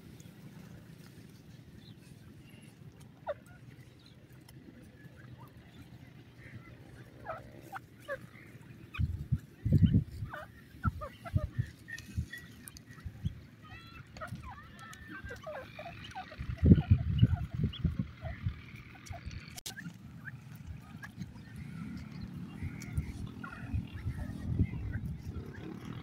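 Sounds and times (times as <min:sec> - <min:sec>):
francolins chirping: 0:00.1 - 0:26.0.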